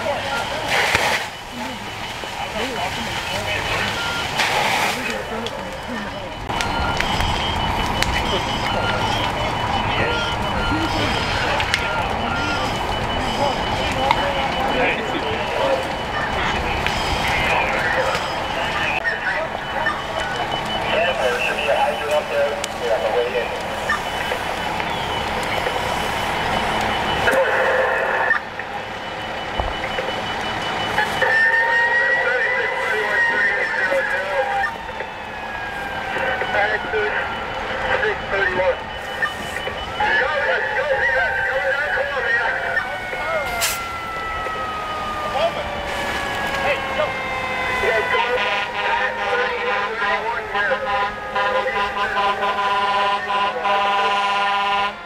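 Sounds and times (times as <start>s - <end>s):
fire apparatus: 0.0s - 55.0s
voices: 0.0s - 55.0s.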